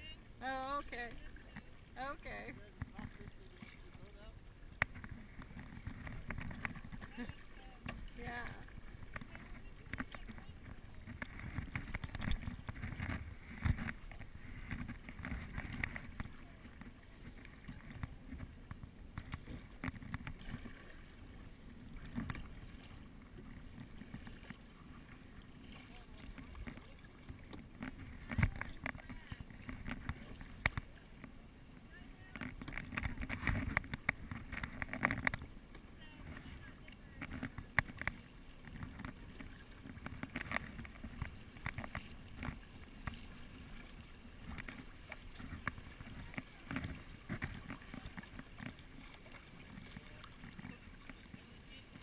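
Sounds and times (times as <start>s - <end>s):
water splashing from paddle strokes: 0.0s - 52.0s
wind rumbling on microphone: 0.0s - 52.0s.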